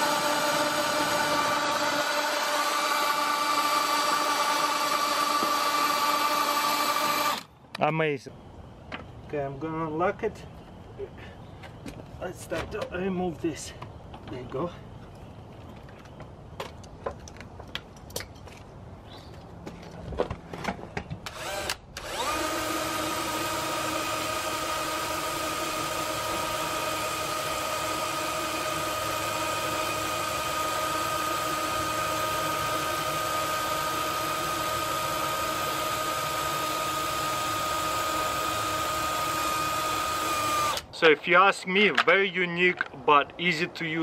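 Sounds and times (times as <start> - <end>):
cordless drill driving winch: 0.0 - 7.5, 21.3 - 40.9.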